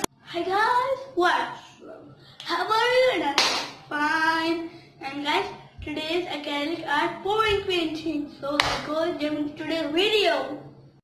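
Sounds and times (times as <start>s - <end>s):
hand clap: 3.4s - 3.8s, 8.6s - 8.9s.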